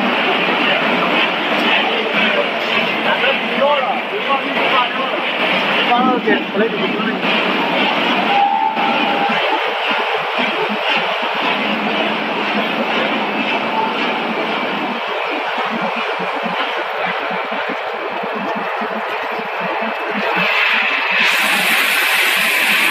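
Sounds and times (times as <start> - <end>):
conveyors and machinery running: 0.0 - 22.9
fast irregular rattle: 9.2 - 22.9.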